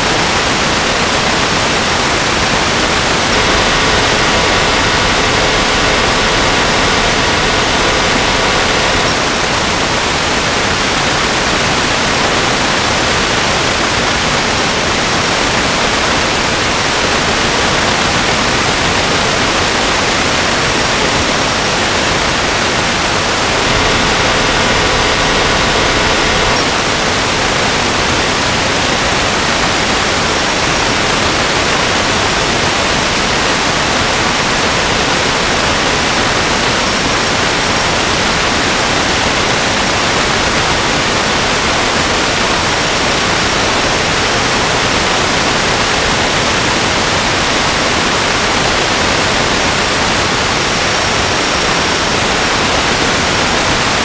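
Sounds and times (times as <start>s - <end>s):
static hiss: 2.8s - 10.4s, 23.3s - 27.0s
faint steady tone: 3.2s - 9.5s.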